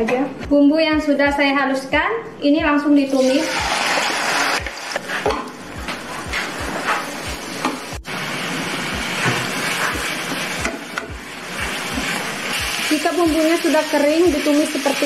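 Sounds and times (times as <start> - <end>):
spice paste sizzling in oil: 6.3 - 15.0.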